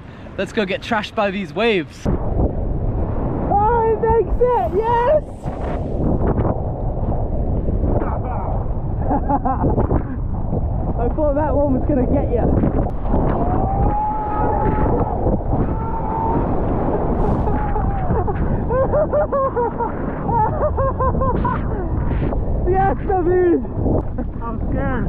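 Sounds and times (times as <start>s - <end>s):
wind buffeting microphone: 0.0s - 25.0s
breaking surf: 2.1s - 9.1s, 12.6s - 22.7s
man screaming: 13.5s - 16.5s.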